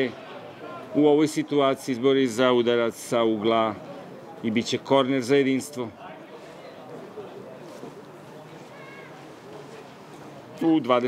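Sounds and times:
distant voices calling out: 5.9 - 10.6.

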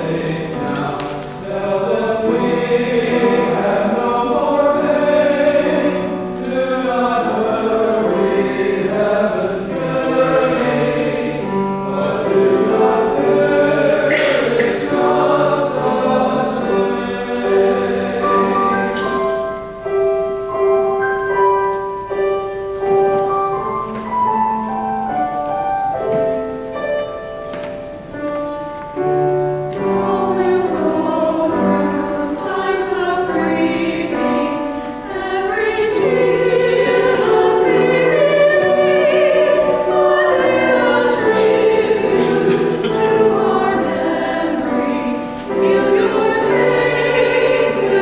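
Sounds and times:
choir singing slow chords: 0.0 - 22.2, 29.0 - 48.0.

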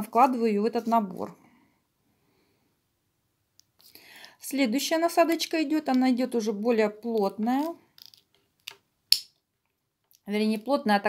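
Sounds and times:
small plastic clicks: 7.2 - 10.3.

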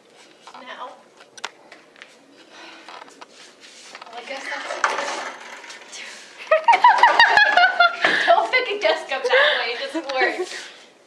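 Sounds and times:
metal chairs and desks clattering: 4.0 - 8.3.

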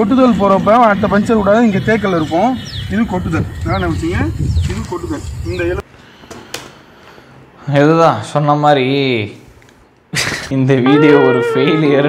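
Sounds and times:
man speaking: 0.0 - 5.8, 10.5 - 12.0
bird whistling calls: 0.7 - 4.7.

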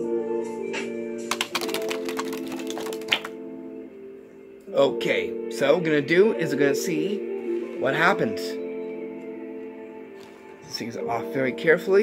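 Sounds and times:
background music with held chords: 0.0 - 12.0
playing cards clicking on table: 1.3 - 3.3.

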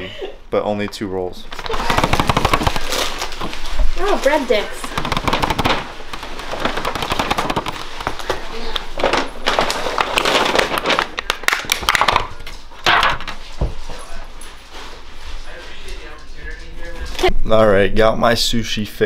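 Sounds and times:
plastic lid crackling: 4.8 - 12.3.

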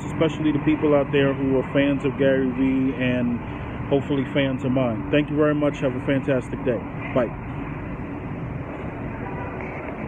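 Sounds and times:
street noise rumble: 0.0 - 10.0.

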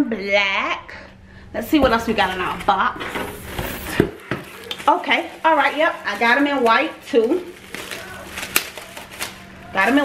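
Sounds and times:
plastic and paper rustling: 2.2 - 10.0.

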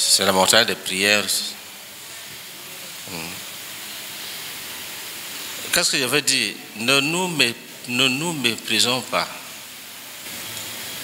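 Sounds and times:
steady background hiss: 0.0 - 11.0
man murmuring: 3.1 - 3.4.

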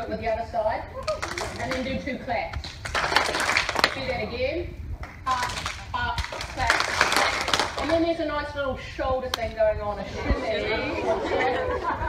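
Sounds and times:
people clapping: 1.0 - 4.0, 5.0 - 8.0.

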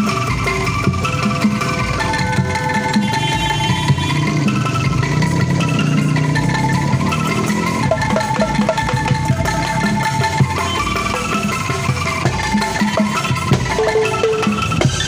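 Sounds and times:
bamboo angklung ensemble: 0.0 - 15.0
bamboo xylophone: 0.0 - 15.0.

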